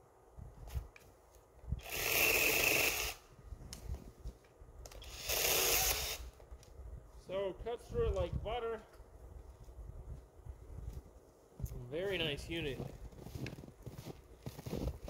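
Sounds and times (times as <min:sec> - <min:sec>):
mini chainsaw cutting branch: 0:01.8 - 0:03.2, 0:04.9 - 0:06.4.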